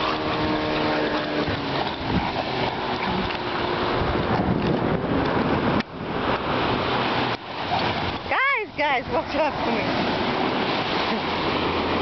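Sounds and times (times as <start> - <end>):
surf breaking on beach: 0.0 - 12.0
wind on microphone: 0.0 - 12.0.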